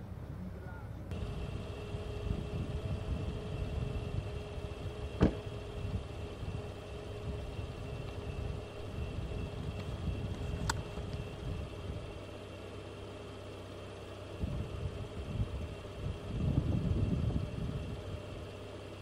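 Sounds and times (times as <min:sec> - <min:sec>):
low rumbling gusts: 0:00.0 - 0:12.5, 0:14.2 - 0:18.6
vehicle engine idling: 0:00.0 - 0:19.0.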